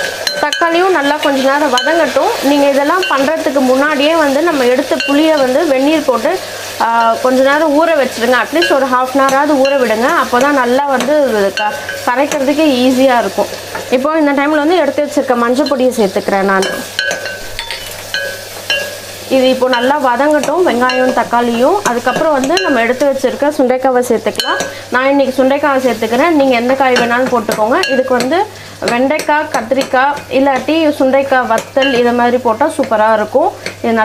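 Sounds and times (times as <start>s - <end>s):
food sizzling in oil: 0.0s - 34.0s
metal ladle clinking against pot: 16.6s - 19.0s, 24.4s - 24.8s, 31.6s - 32.2s.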